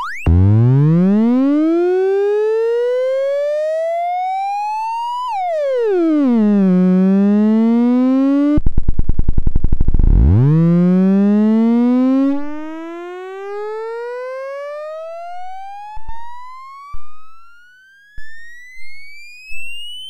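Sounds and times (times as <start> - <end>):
buzzy synthesizer tone gliding in pitch: 5.5 - 16.9.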